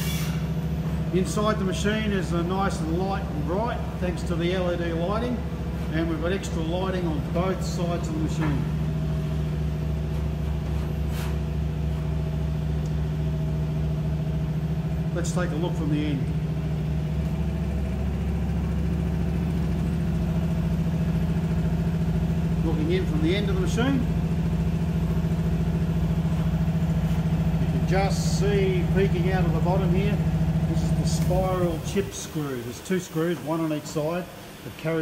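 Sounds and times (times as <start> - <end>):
machining center humming: 0.0 - 35.0.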